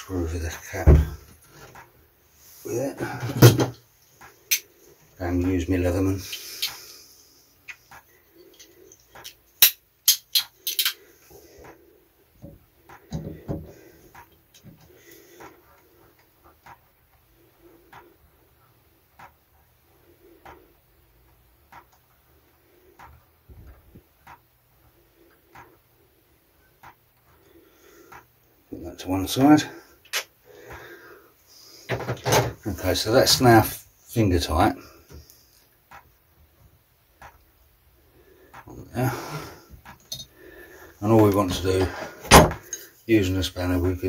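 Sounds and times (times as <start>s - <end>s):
soft regular clicks: 3.8s - 28.7s, 33.4s - 42.0s, 42.6s - 43.0s.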